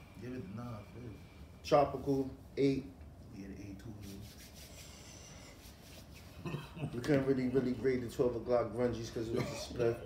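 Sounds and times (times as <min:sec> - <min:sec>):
man speaking: 0:06.9 - 0:10.0.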